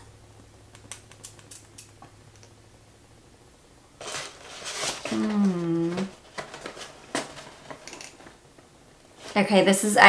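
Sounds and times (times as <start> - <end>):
faint clicks and paper rustles: 4.0 - 9.6.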